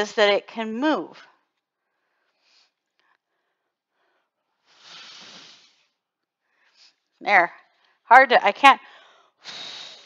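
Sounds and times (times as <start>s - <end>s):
person blowing breath: 4.6s - 6.0s, 9.2s - 10.0s.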